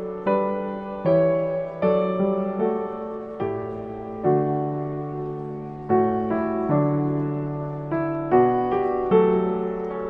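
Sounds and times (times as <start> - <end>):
gentle piano music: 0.0 - 10.0.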